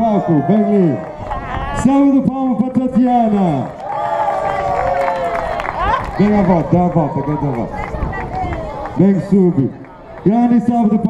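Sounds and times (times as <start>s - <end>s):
voice over loudspeakers: 5.8s - 11.0s.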